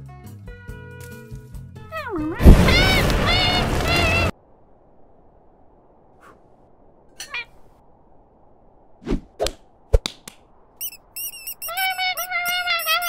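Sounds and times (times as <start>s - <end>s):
squeaky cartoon voice chattering: 10.8s - 13.0s.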